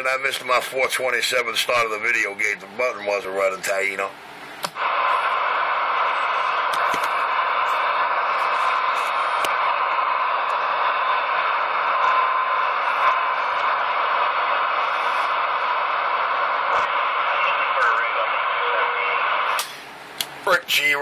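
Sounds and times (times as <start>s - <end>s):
radio static hiss: 0.0s - 21.0s.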